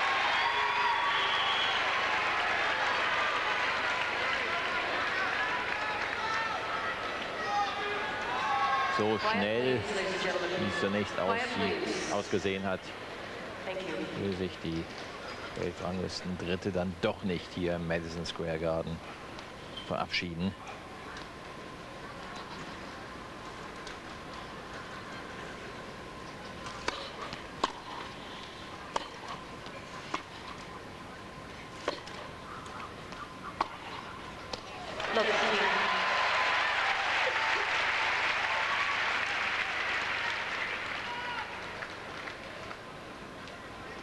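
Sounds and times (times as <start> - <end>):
crowd applause and cheering: 0.0 - 9.2, 34.9 - 42.8.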